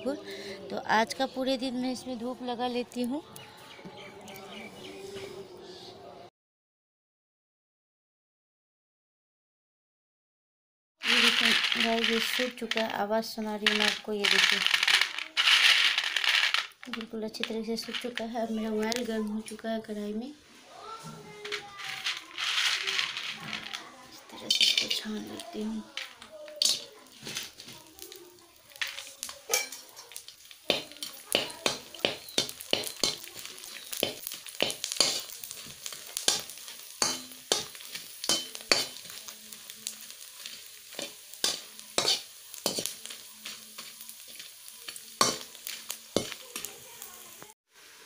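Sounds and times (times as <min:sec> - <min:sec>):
crisps sizzling in hot oil: 0:11.0 - 0:20.2, 0:20.8 - 0:48.0
spoon scraping and tapping pan: 0:24.4 - 0:25.2, 0:26.0 - 0:28.1, 0:28.8 - 0:39.3, 0:40.4 - 0:46.7.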